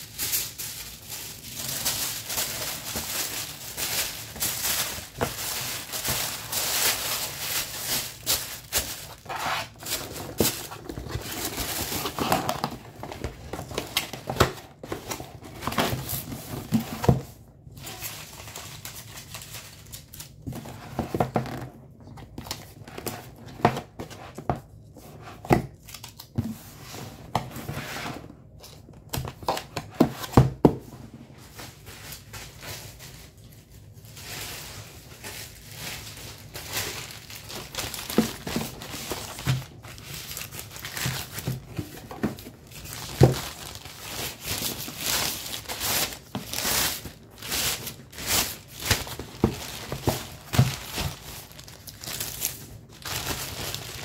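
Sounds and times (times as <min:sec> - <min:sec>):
tissue paper crinkling: 0:00.0 - 0:16.8, 0:31.4 - 0:54.0.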